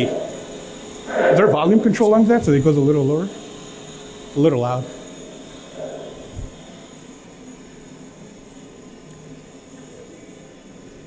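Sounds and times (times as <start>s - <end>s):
rushing air-like noise: 0.0s - 7.1s
faint low hum: 0.0s - 11.0s.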